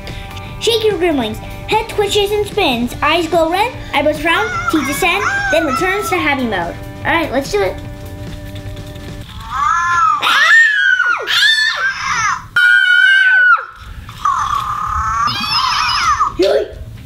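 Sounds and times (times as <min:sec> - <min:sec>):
background music: 0:00.0 - 0:10.4.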